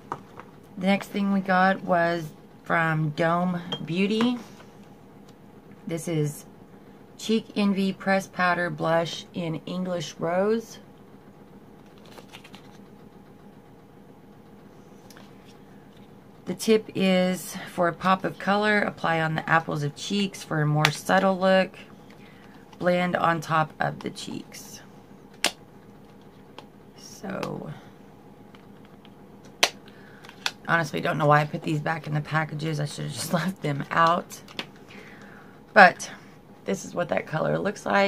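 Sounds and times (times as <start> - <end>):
low room hum: 0.0 - 38.0.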